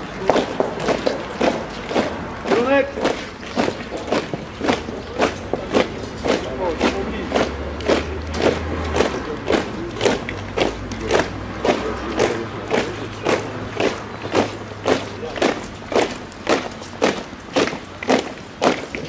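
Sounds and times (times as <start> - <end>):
boots marching on stone: 0.0 - 19.0.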